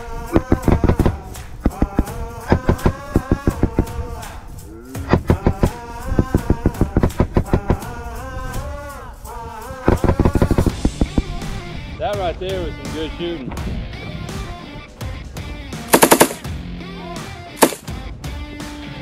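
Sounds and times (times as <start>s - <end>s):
background music with singing: 0.0s - 19.0s
machine gun automatic bursts: 15.9s - 16.5s, 17.6s - 17.8s.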